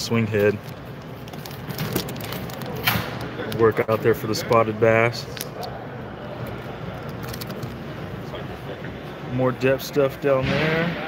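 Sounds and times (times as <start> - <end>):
plastic package crinkling: 1.1 - 2.8.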